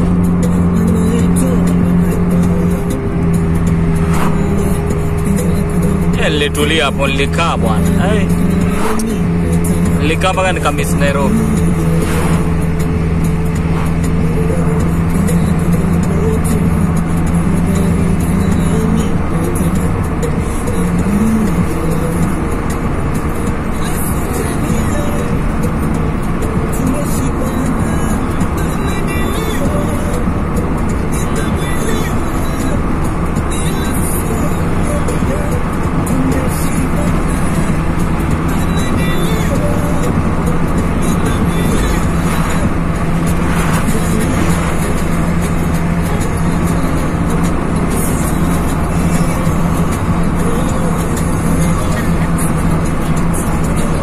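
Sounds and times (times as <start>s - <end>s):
car engine and tyre drone: 0.0s - 54.0s
music playing: 0.0s - 54.0s.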